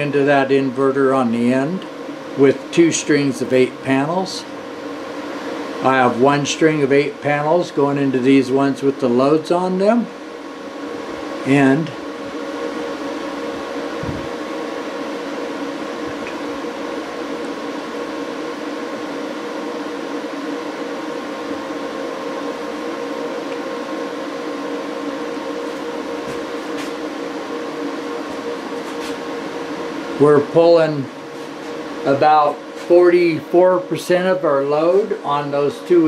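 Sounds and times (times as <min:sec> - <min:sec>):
cooling fan noise: 0:00.0 - 0:36.0
tonal electrical hum: 0:00.0 - 0:36.0.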